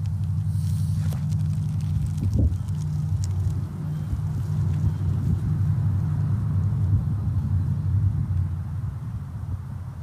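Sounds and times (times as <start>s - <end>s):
low fluttering rumble: 0.0s - 10.0s.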